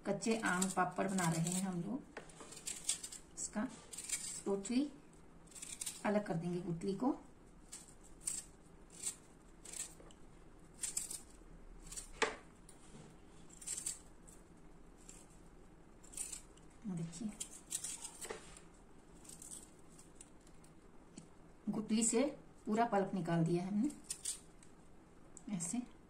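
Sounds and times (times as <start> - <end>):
knife scraping stone: 0.3 - 4.5, 5.5 - 6.0, 7.7 - 10.1, 10.8 - 12.2, 13.5 - 14.1, 16.0 - 16.6, 17.4 - 18.4.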